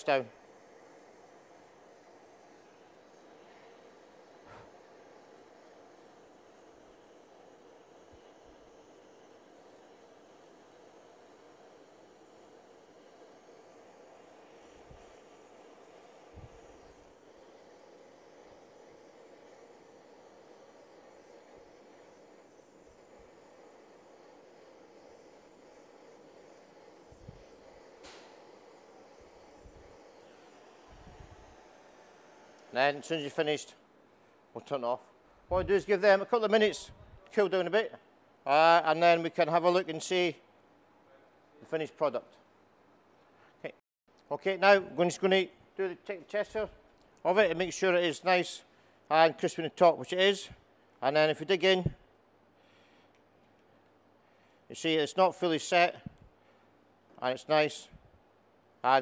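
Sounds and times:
blowtorch hissing: 0.0 - 37.9, 46.3 - 53.2.

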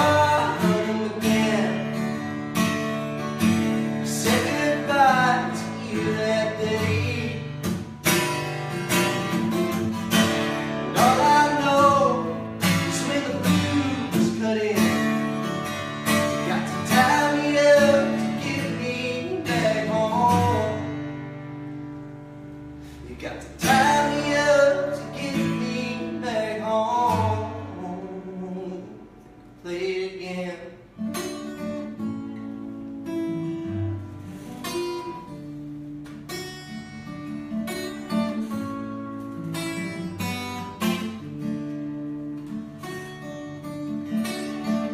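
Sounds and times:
man singing: 0.0 - 2.3, 3.8 - 7.9, 10.7 - 21.0, 23.0 - 30.9
acoustic guitar strumming: 0.0 - 44.9.

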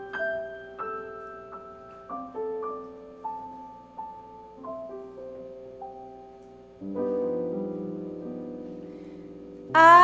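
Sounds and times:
soft grand piano: 0.0 - 10.0
woman singing: 9.7 - 10.0.

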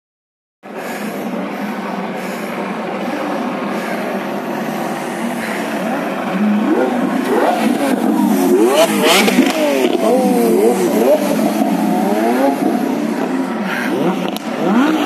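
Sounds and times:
cars rolling past: 0.7 - 15.0
sports car engines revving: 0.7 - 15.0.

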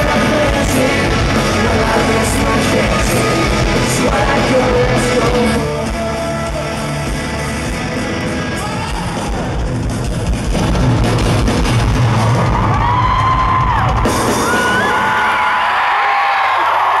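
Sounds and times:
pop-punk band drums and guitars: 0.0 - 15.8
arena crowd screaming and cheering: 0.0 - 17.0.

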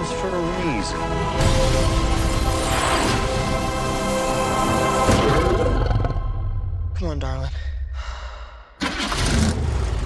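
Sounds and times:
car engine starting and running: 8.8 - 10.0.

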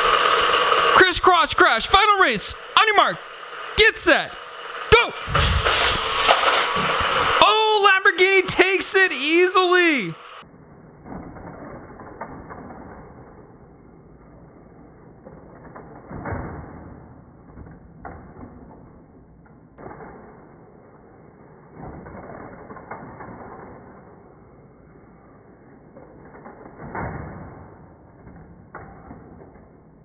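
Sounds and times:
motorized toy track whirring: 0.0 - 30.0.

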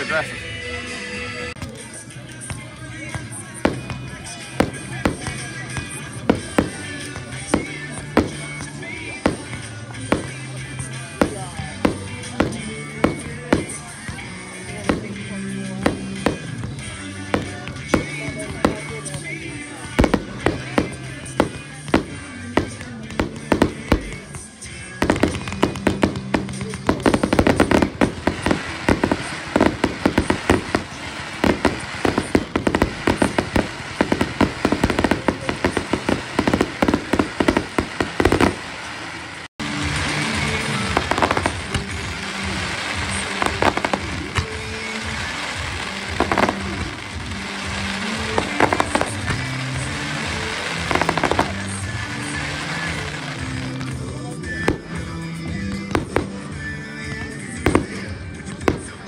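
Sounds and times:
music playing: 0.0 - 59.0
fireworks crackling pops: 1.4 - 59.0
fireworks bangs: 1.6 - 59.0.

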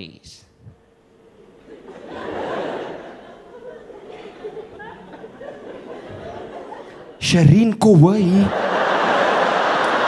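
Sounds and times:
audience laughter: 1.4 - 7.2, 8.4 - 10.0.

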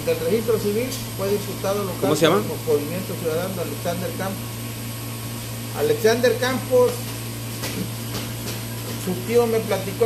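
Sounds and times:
electric pump humming: 0.0 - 10.0.

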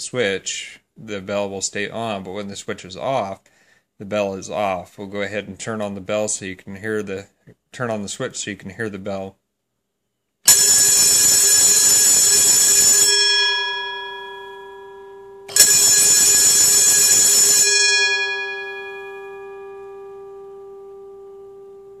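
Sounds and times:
alarm bell ringing: 10.5 - 20.8.

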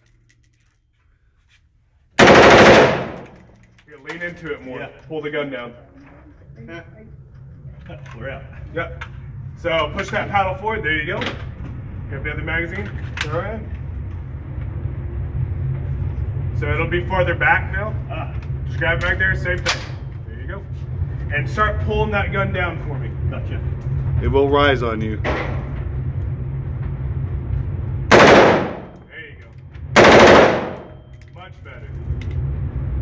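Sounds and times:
low steady hum: 0.0 - 0.8, 2.2 - 33.0
rifle full-auto burst: 2.2 - 3.3, 28.1 - 29.0, 30.0 - 31.0
ventilation rumble: 2.2 - 33.0
person speaking: 24.2 - 25.2.

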